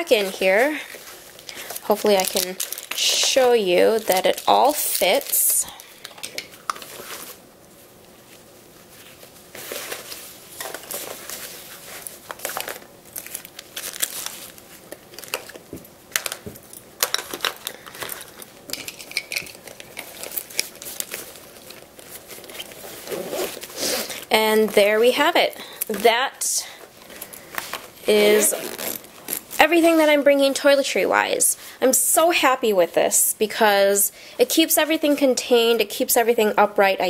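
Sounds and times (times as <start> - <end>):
plastic wrappers crinkling: 0.0 - 7.4, 8.0 - 31.3
small bottles clicking and knocking: 15.2 - 20.7.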